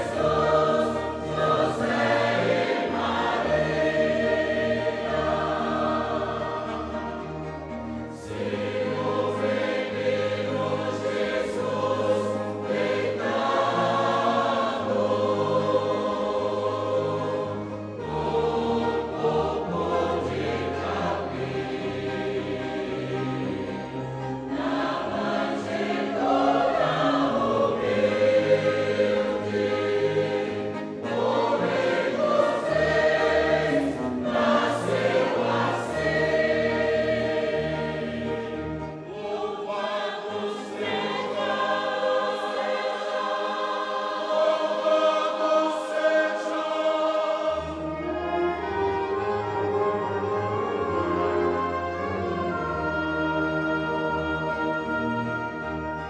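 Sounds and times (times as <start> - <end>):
choir singing a hymn: 0.0 - 56.0
low instrumental accompaniment: 0.0 - 56.0.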